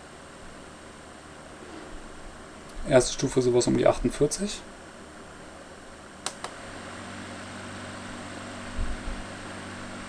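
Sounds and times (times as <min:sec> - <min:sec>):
fan humming with airflow hiss: 0:00.0 - 0:10.0
fan control clicks: 0:06.2 - 0:06.6.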